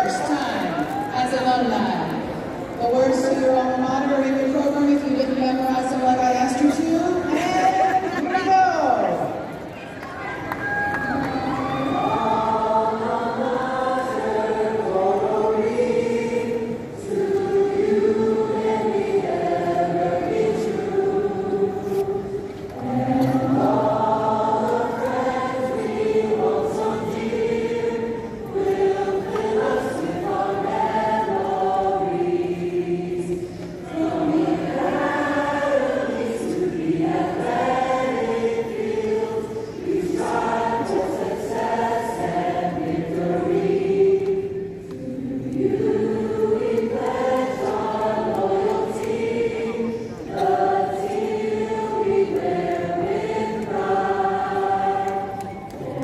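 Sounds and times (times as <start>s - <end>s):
choir singing slowly: 10.9s - 56.0s.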